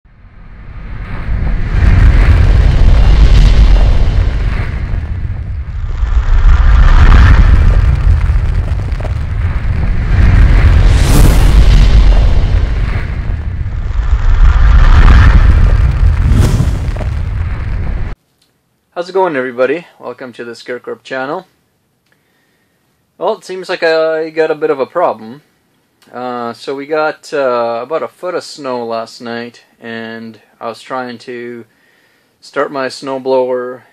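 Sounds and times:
continuous low rumble: 0.1 - 18.2
rising whoosh: 0.1 - 18.2
deep booming hits: 0.5 - 18.2.

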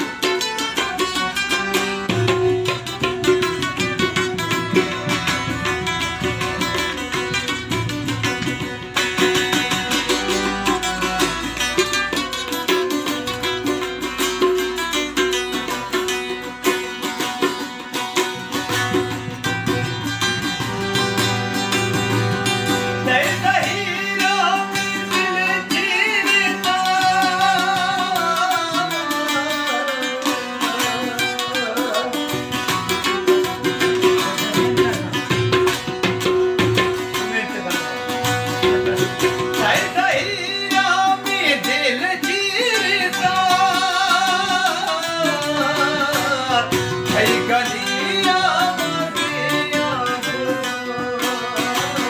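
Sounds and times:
harmonium chords: 0.0 - 52.0
strummed lute: 0.0 - 52.0
tabla drumming: 0.0 - 52.0
man singing: 22.6 - 36.4, 37.0 - 52.0.

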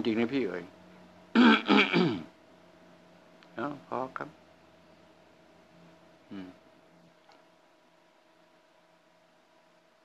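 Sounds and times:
man clearing his throat: 1.3 - 2.4.

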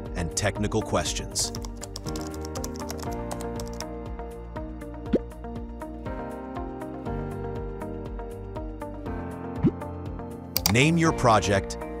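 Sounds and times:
background music: 0.0 - 12.0
keyboard typing: 1.5 - 3.9, 10.6 - 10.9.

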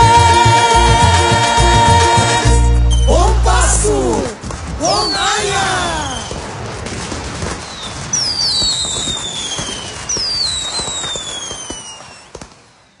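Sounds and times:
fireworks crackling: 3.0 - 13.0
whistling rockets: 4.4 - 13.0.

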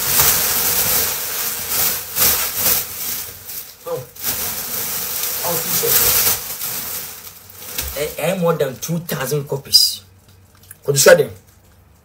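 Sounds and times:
bag rustling and crinkling: 0.0 - 9.4.

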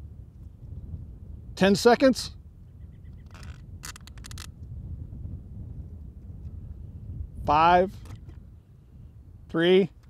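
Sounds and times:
wind rumble on microphone: 0.0 - 10.0
strap clicks and scrapes: 3.2 - 4.7, 8.0 - 8.4.

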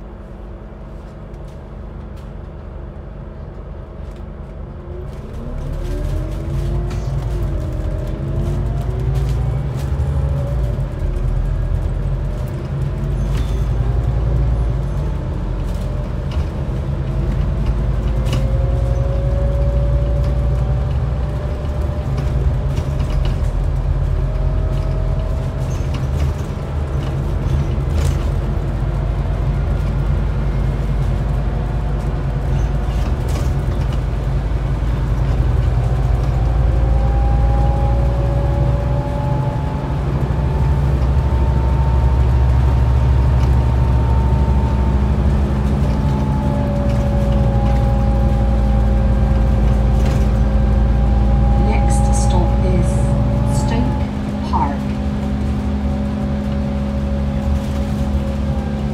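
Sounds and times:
bus engine drone: 0.0 - 58.9
rising engine whine: 0.0 - 58.9.

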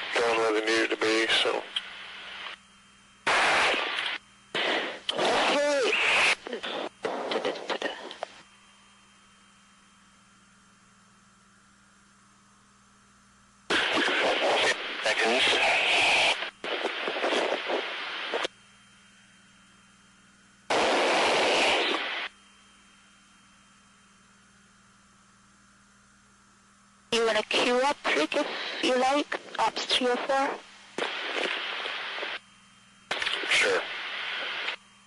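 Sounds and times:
garbled radio voice transmissions: 0.0 - 1.9, 5.1 - 8.3, 13.7 - 18.5, 27.2 - 32.0, 33.1 - 34.7
faint steady hum: 0.0 - 35.0.

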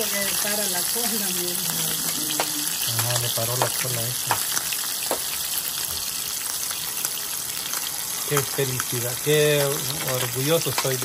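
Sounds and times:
fish frying in hot oil: 0.0 - 11.0.

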